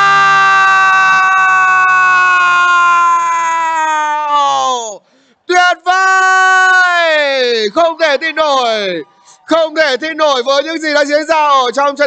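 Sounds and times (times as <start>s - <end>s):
commentator's long held shout: 0.0s - 11.7s.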